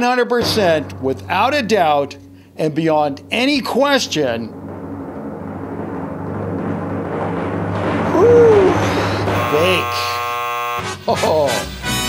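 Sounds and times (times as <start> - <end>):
harsh buzzer: 9.4 - 11.1.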